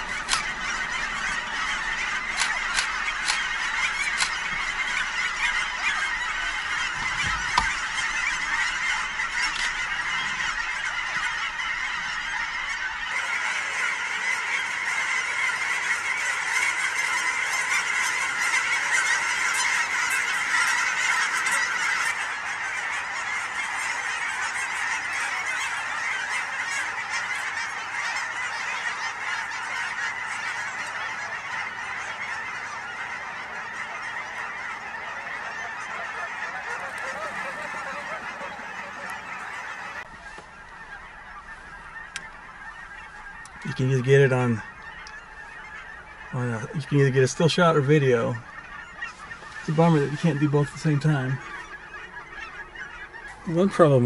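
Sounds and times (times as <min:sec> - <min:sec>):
flock of geese honking: 0:00.0 - 0:54.0.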